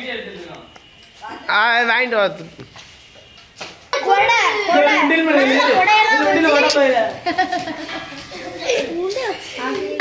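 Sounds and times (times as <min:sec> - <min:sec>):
child talking loudly: 0:04.0 - 0:06.8.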